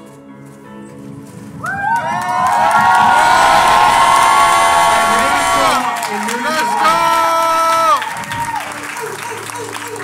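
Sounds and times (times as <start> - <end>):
soft keyboard music: 0.0 - 10.0
crowd cheering and whooping: 1.6 - 10.0.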